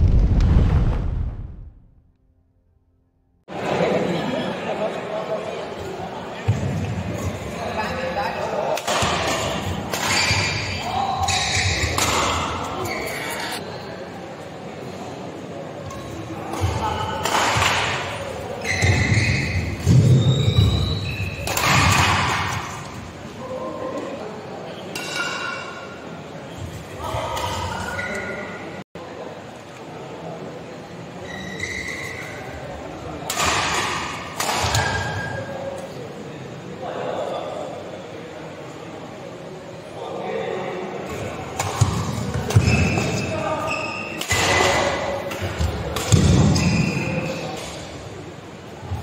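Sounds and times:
shoe squeak: 12.8s - 13.6s, 18.6s - 21.5s, 31.2s - 32.5s, 42.6s - 44.2s, 46.5s - 47.5s
shoes squeaking on court: 18.6s - 21.5s
racket hitting shuttlecock: 44.2s - 46.7s.

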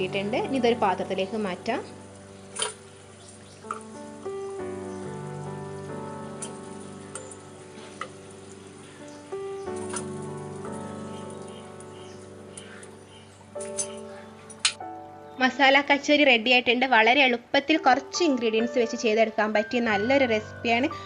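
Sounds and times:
food deep-frying in oil: 0.0s - 12.9s
background music with held notes: 0.0s - 21.0s.

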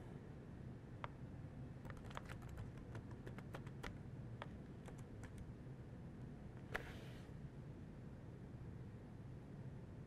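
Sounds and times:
laptop keyboard typing clicks: 1.8s - 5.5s.

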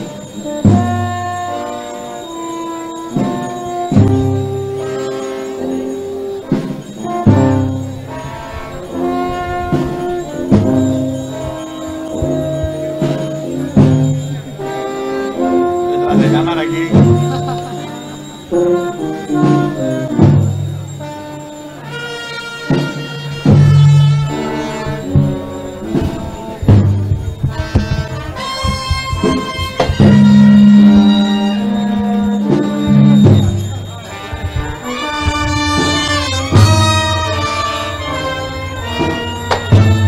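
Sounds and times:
brass band playing funeral march: 0.0s - 40.0s.

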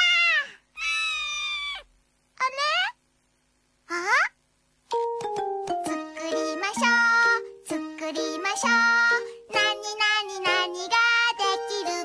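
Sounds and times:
cat meowing: 0.0s - 1.9s.

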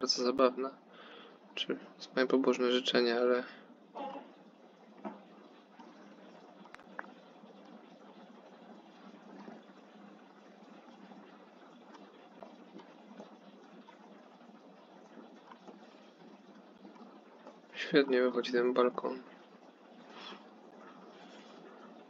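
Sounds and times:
room noise hiss: 0.0s - 22.0s.

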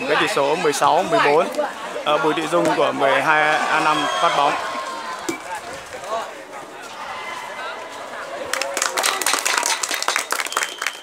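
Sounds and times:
spectators chattering: 0.0s - 11.0s
hand clapping with voices: 8.4s - 11.0s.

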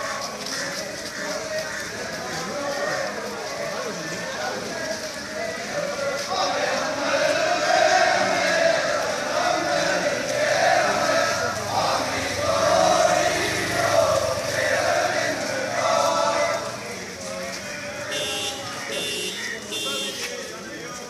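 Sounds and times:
men chanting in unison: 1.9s - 19.6s.

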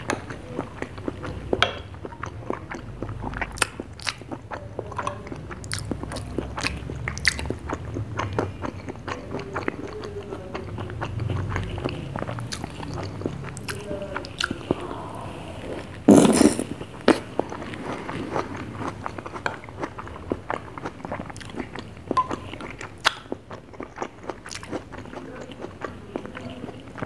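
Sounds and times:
wet mouth clicks and chewing: 0.0s - 27.0s.

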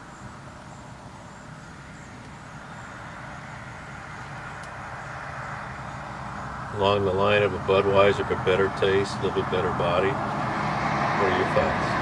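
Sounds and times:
vehicle passing on road: 0.0s - 12.0s.

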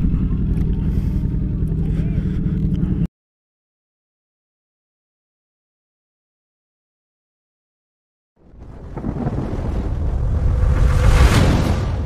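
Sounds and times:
deep rumbling explosion: 8.4s - 12.0s.

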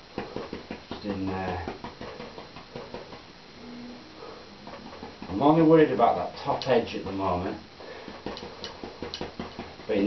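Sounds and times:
brush dabbing on canvas: 0.0s - 3.3s, 4.2s - 10.0s.

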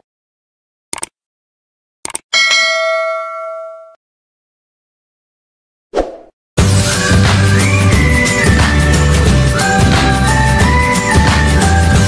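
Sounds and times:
notification bell ding: 2.4s - 4.0s.

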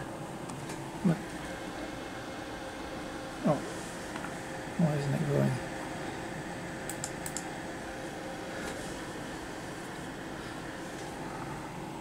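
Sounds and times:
steady hum: 0.0s - 12.0s
light clicks: 6.9s - 7.5s.

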